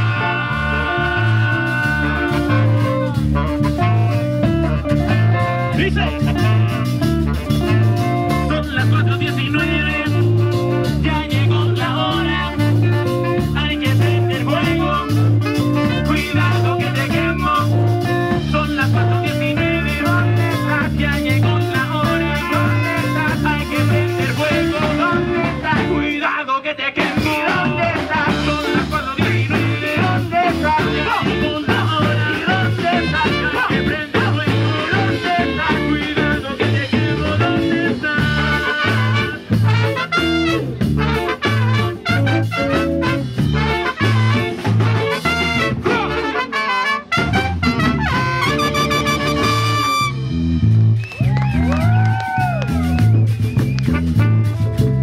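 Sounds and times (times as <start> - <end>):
person singing: 0.0 - 3.6, 8.4 - 40.2
drum kit beat: 0.0 - 26.2, 27.0 - 55.0
trumpet: 0.0 - 26.2, 27.1 - 50.7, 51.5 - 55.0
electric bass line: 0.0 - 26.3, 27.0 - 55.0
electric guitar: 0.0 - 26.3, 27.0 - 55.0.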